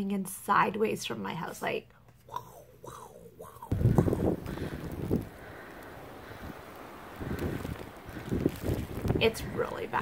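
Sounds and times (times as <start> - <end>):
snowstorm wind blowing: 2.8 - 10.0
wind gusts on microphone: 3.6 - 10.0.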